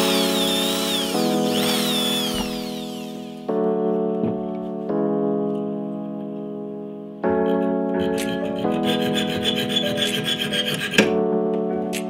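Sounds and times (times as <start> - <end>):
background music: 0.0 - 12.0
hacksaw rasping on metal: 8.0 - 11.1.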